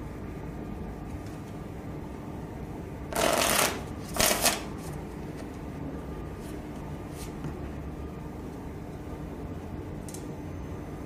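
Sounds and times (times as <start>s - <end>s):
steady background hum: 0.0s - 11.0s
playing cards riffle-shuffled: 3.2s - 5.5s.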